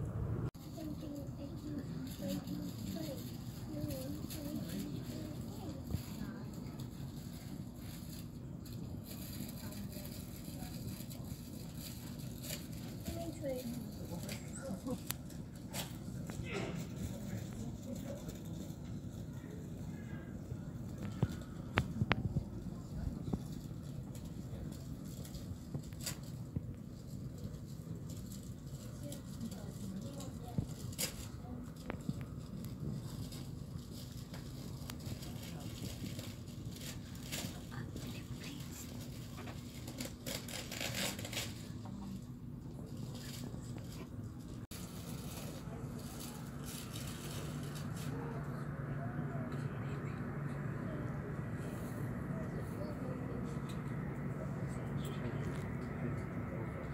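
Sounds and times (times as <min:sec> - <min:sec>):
steady low hum: 0:00.0 - 0:56.9
indistinct background voices: 0:00.7 - 0:56.9.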